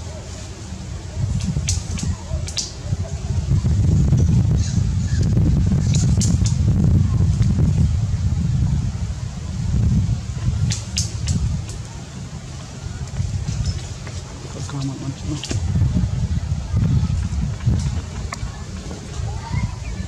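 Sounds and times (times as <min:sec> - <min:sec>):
wind rumble on microphone: 0:00.0 - 0:20.0.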